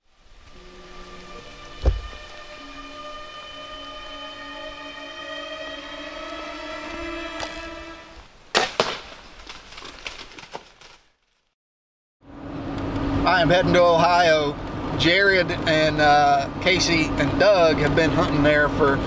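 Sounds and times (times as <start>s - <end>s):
rising droning chord: 0.0s - 8.3s
sharp cracks: 8.5s - 11.0s.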